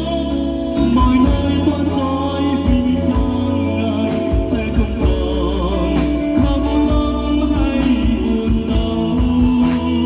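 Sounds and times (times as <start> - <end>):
electric guitar: 0.0 - 10.0
man singing into a microphone: 0.0 - 10.0.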